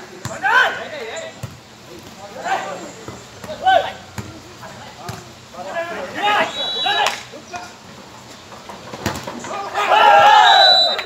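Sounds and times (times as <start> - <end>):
loud shout: 0.3 - 0.9, 5.8 - 7.4, 9.4 - 11.0.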